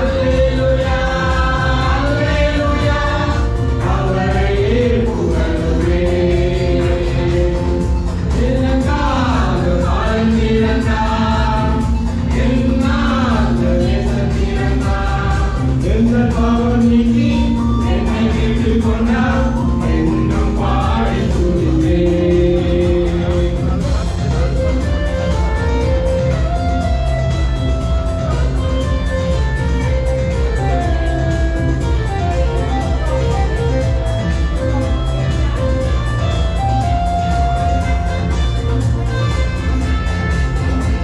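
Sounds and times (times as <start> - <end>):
group singing into microphones: 0.0 - 27.4
amplified backing music: 0.0 - 41.0.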